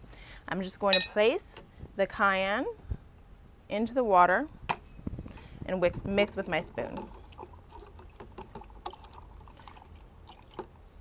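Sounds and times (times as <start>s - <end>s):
spoon clinking against glass: 0.9s - 1.2s
liquid swishing: 5.9s - 10.8s.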